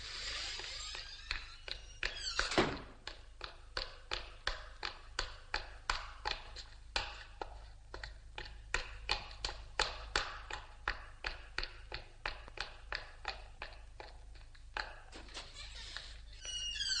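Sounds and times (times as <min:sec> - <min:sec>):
hard-soled footsteps on concrete: 0:00.1 - 0:14.6.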